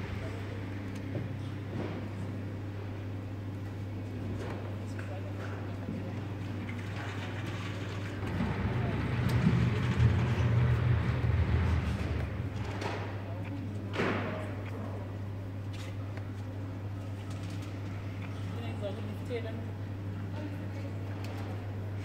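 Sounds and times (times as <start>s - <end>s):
low machine hum: 0.0s - 22.0s
loud rumble: 7.6s - 12.7s.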